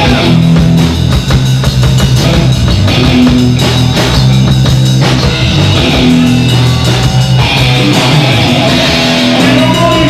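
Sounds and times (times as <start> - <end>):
drum kit beat: 0.0 - 10.0
electric guitar: 0.0 - 10.0.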